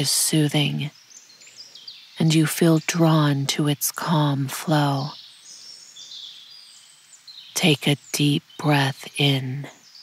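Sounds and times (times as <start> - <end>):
faint bird chirps: 0.0 - 10.0
soft forest ambience hiss: 0.0 - 10.0.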